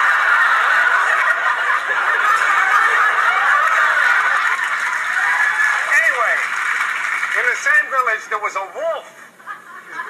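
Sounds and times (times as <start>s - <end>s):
audience laughing on television: 0.0s - 7.4s, 9.2s - 10.0s.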